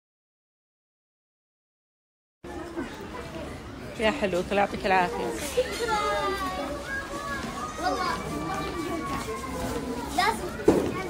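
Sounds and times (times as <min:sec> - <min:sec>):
children's voices chattering: 0:02.4 - 0:11.0.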